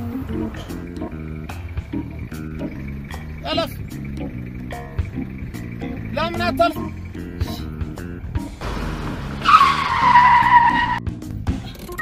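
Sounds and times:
background music: 0.0s - 12.0s
car tyres screeching: 0.0s - 12.0s.

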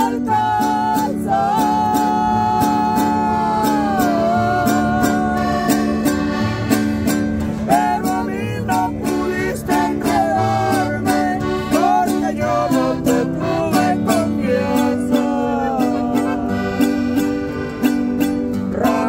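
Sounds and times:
woman singing: 0.0s - 6.0s
accordion: 0.0s - 19.0s
acoustic guitar: 0.0s - 19.0s.

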